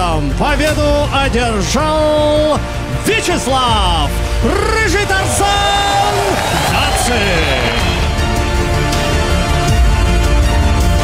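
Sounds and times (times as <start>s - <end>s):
music playing: 0.0s - 11.0s
man yelling: 4.5s - 8.1s.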